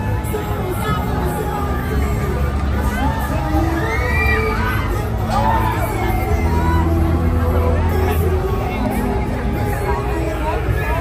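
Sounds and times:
crowd chatter: 0:00.0 - 0:11.0
fairground music with heavy bass: 0:00.0 - 0:11.0.

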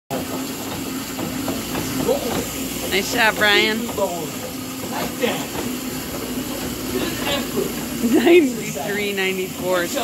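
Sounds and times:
exercise machines whirring: 0:00.1 - 0:10.0.

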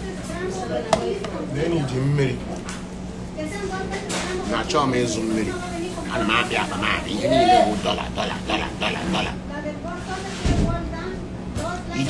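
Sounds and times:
steady low hum: 0:01.4 - 0:10.2
man talking: 0:06.1 - 0:09.4.

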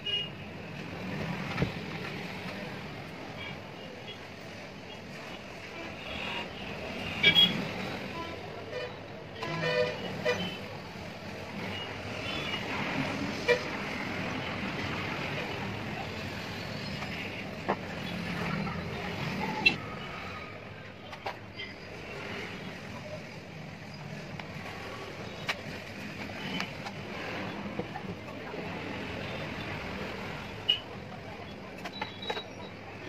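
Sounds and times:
steady background noise: 0:00.0 - 0:33.0.

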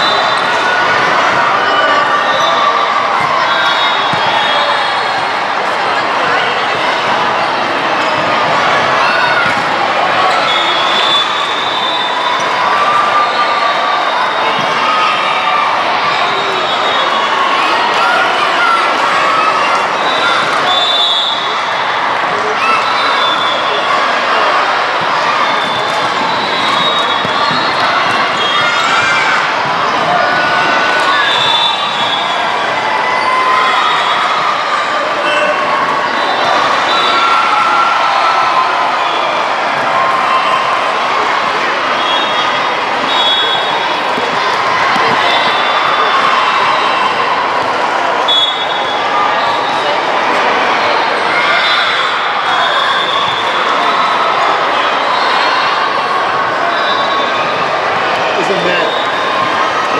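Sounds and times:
crowd shouting and cheering: 0:00.0 - 0:59.9.

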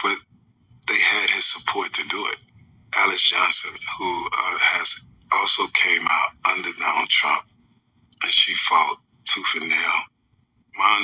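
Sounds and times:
person speaking: 0:00.0 - 0:00.2, 0:00.8 - 0:07.5, 0:08.1 - 0:10.1, 0:10.8 - 0:11.0.

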